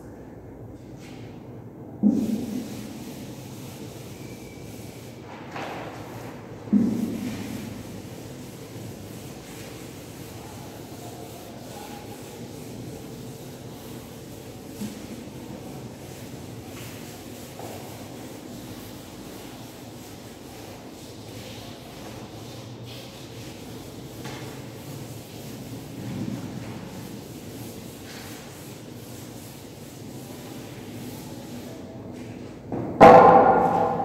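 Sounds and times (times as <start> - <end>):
duster scrubbing chalkboard: 2.0 - 34.0.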